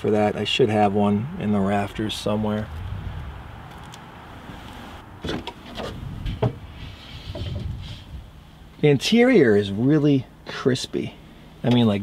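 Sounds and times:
wind on microphone: 2.1s - 5.2s, 5.8s - 8.4s.

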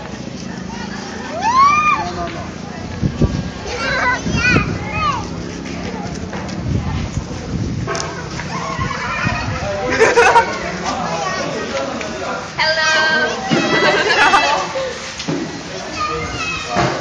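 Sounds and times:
children calling and shouting: 0.0s - 17.0s
general voices: 0.0s - 17.0s.

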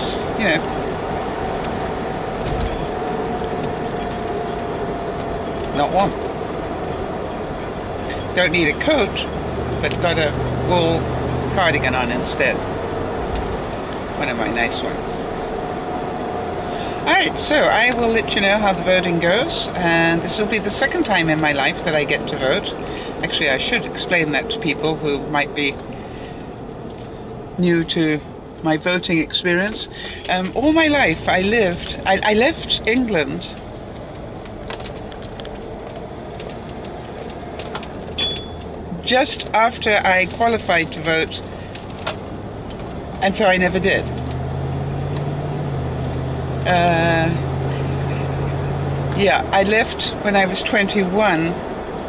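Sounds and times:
car road and engine rumble: 0.0s - 52.0s.

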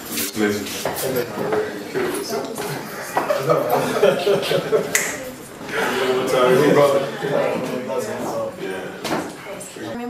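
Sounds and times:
men's voices: 0.1s - 5.0s, 5.6s - 10.0s
handshake finger snap: 4.9s - 5.2s.

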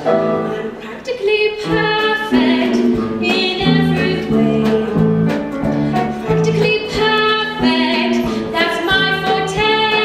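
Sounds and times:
instrumental accompaniment: 0.0s - 10.0s
woman singing: 0.5s - 10.0s.

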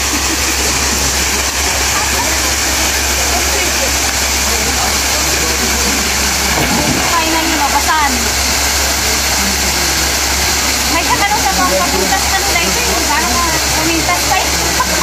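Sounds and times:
people's voices: 0.0s - 15.0s
waterfall rushing into pool: 0.0s - 15.0s.

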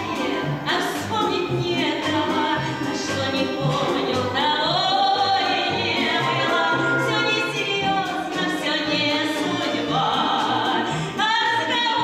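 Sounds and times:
folk instrument orchestra: 0.0s - 12.0s
woman singing: 0.0s - 12.0s.

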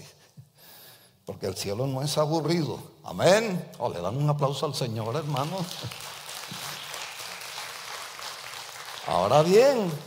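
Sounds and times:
congregation applauding: 5.0s - 10.0s.

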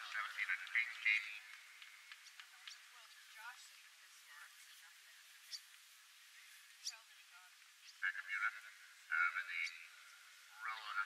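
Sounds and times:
person talking: 6.9s - 11.0s.

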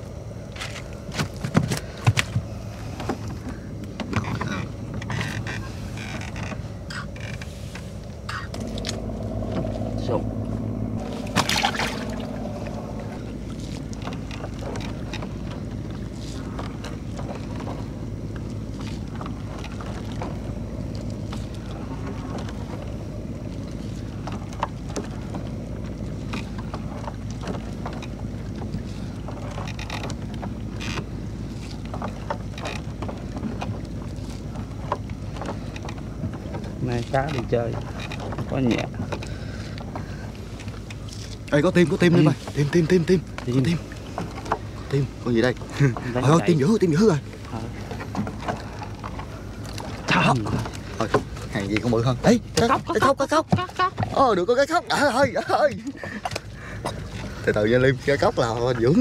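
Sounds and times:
boat engine droning: 0.0s - 59.0s.

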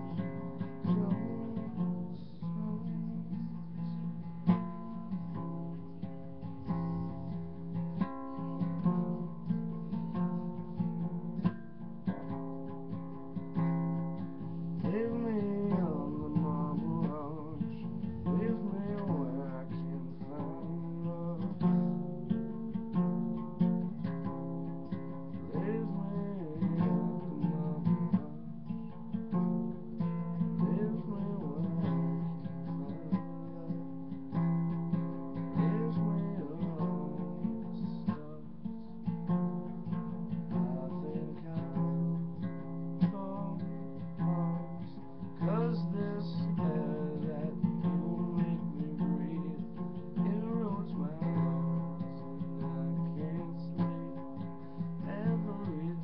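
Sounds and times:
acoustic guitar strumming: 0.0s - 56.0s.

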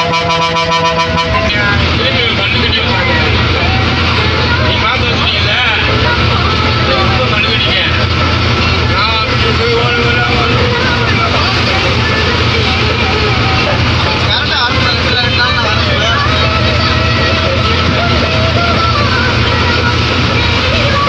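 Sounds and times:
bus engine droning: 0.0s - 21.0s
voices: 0.0s - 21.0s.

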